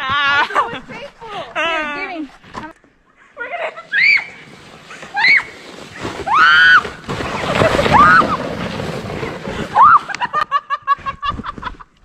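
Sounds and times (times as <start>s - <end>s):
sled sliding on snow: 3.4s - 11.9s
girl shrieking: 3.9s - 4.4s.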